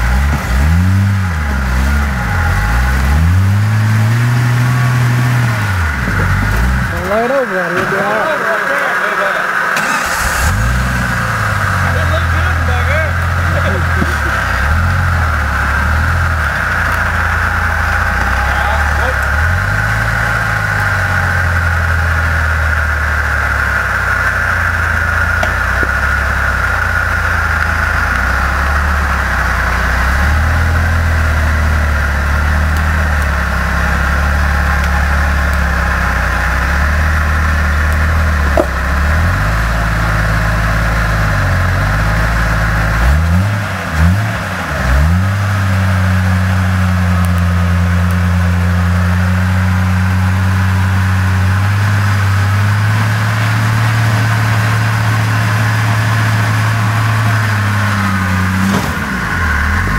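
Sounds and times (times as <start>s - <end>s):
off-road vehicle engine revving: 0.0s - 59.9s.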